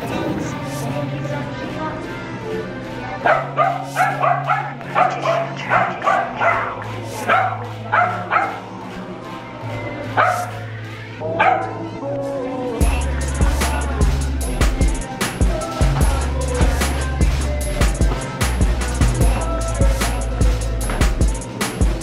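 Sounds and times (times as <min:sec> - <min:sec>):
background music: 0:00.0 - 0:22.0
dog yipping: 0:03.2 - 0:06.7, 0:07.3 - 0:08.6, 0:10.2 - 0:10.5, 0:11.4 - 0:11.7.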